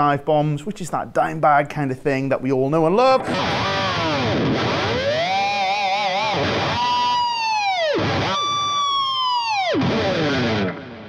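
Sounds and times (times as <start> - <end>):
guitar harmonics diving in pitch: 3.0 - 11.0
electric guitar whammy bar warble: 3.1 - 11.0.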